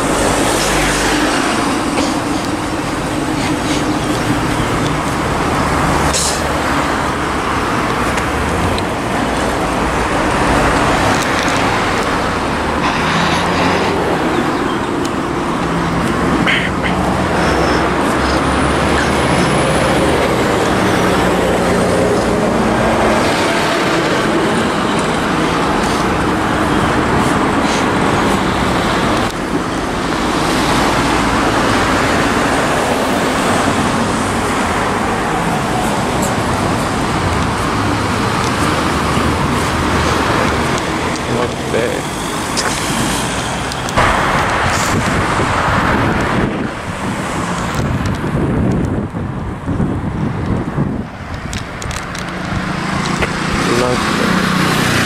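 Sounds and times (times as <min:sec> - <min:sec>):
road traffic passing: 0:00.0 - 0:55.0.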